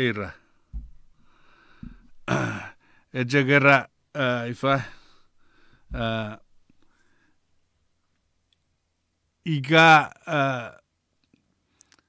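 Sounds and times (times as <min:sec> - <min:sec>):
man's faint in-breath: 0:01.2 - 0:02.2, 0:04.8 - 0:06.0.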